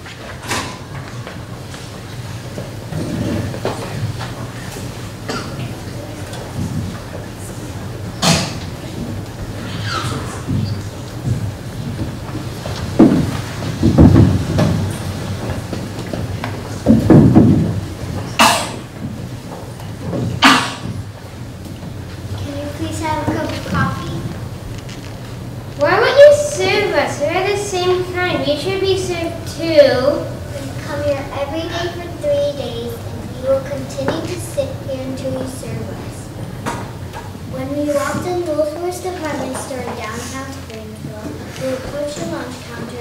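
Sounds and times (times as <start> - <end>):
large hall hum: 0.0 - 43.0
boxes knocking on wooden floor: 10.4 - 21.1.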